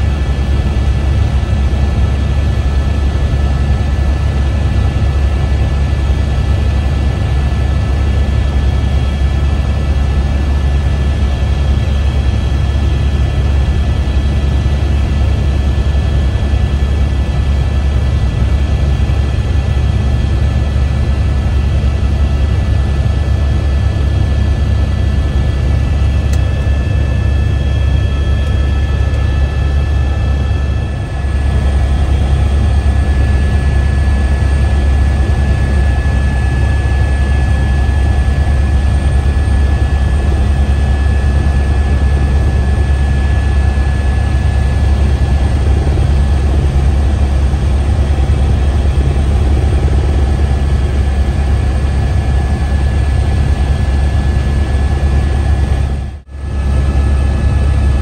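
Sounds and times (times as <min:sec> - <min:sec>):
faint high whine: 0:21.5 - 0:58.0.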